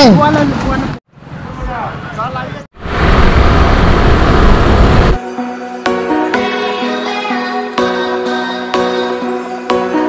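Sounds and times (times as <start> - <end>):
road noise: 0.0 - 5.2
motorcycle running: 2.8 - 5.2
wind buffeting microphone: 2.8 - 5.2.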